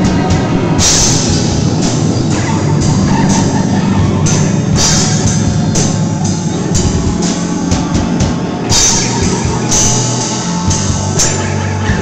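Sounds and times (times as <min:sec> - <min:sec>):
cymbal hits: 0:00.0 - 0:12.0
live rock band: 0:00.0 - 0:12.0.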